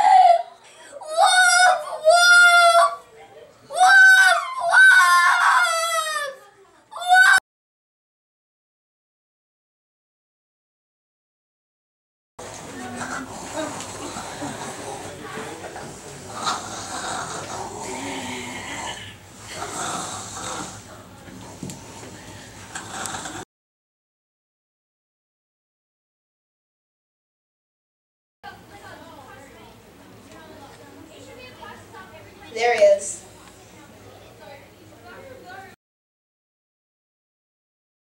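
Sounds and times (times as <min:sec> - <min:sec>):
boy crying in high wails: 0:00.0 - 0:03.0, 0:03.7 - 0:07.4
boy snoring: 0:12.9 - 0:15.2, 0:16.3 - 0:20.9, 0:22.7 - 0:23.4.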